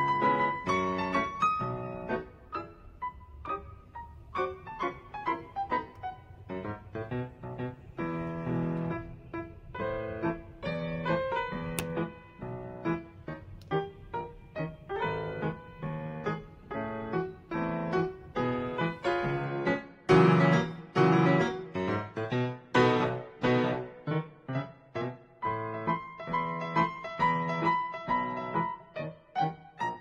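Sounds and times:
piano music: 0:00.0 - 0:30.0.

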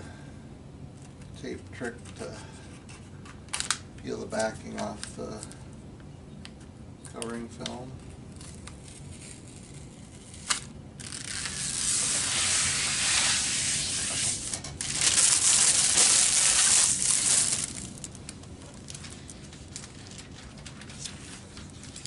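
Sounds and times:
plastic film crackling and crinkling: 0:08.3 - 0:22.0.

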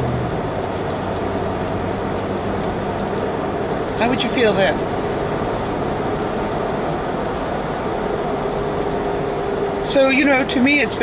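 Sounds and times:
car cabin road noise: 0:00.0 - 0:11.0.

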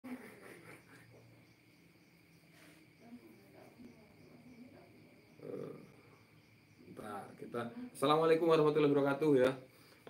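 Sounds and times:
night insects chirring: 0:00.1 - 0:10.0.

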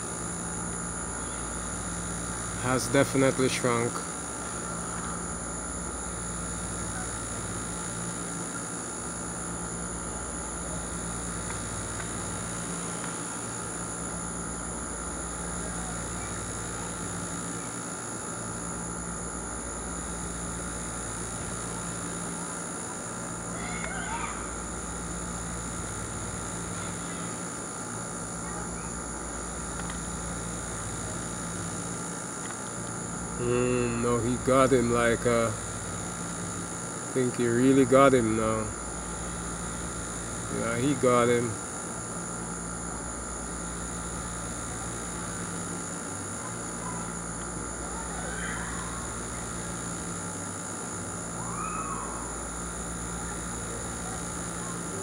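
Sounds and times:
high-pitched constant tone: 0:00.0 - 0:42.5, 0:43.1 - 0:55.0
steady hum: 0:00.0 - 0:55.0.

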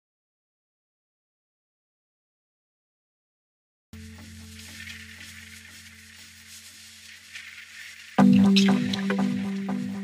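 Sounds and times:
crackling sizzling hiss: 0:04.0 - 0:10.0.

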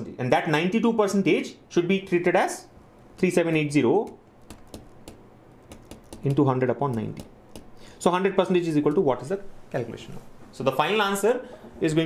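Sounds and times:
stylus tapping on tablet: 0:04.0 - 0:07.8.

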